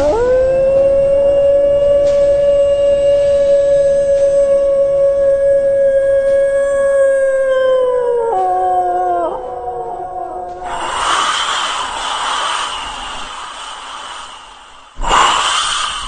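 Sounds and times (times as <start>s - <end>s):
howl-like vocal note: 0.0s - 16.0s
wind-like rushing hiss: 10.6s - 16.0s.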